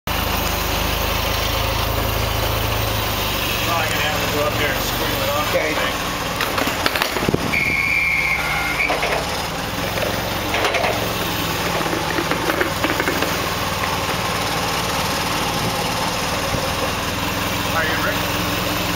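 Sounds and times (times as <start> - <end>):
forklift engine idling: 0.1 - 18.9
wooden crate knocking on metal: 11.6 - 14.3.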